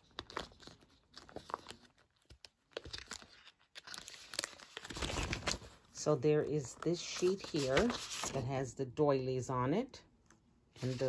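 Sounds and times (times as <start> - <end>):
plastic packaging crinkling: 0.0 - 5.8.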